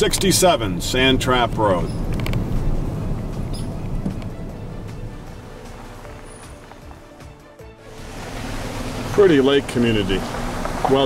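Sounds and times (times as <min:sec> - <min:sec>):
vehicle rumble from inside cab: 0:00.0 - 0:07.2, 0:07.9 - 0:11.0.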